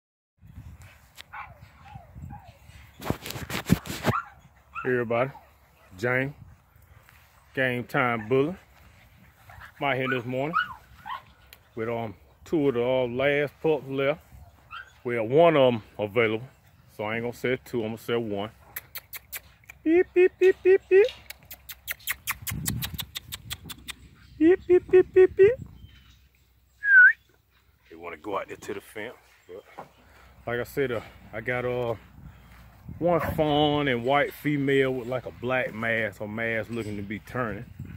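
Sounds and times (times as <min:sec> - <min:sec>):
puppies whining: 0:10.0 - 0:11.5.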